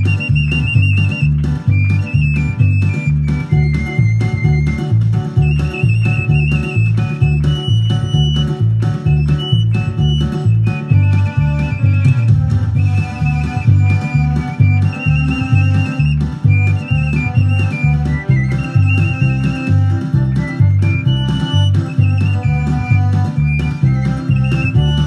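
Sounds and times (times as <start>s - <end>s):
pipe playing folk melody: 0.0s - 25.0s
string drum beat: 0.0s - 25.0s.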